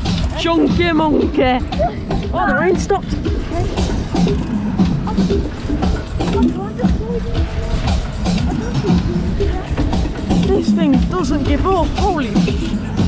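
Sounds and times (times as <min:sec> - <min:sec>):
fairground music with beat: 0:00.0 - 0:13.0
fairground ride rumble: 0:00.0 - 0:13.0
riders' voices and laughter: 0:00.2 - 0:13.0.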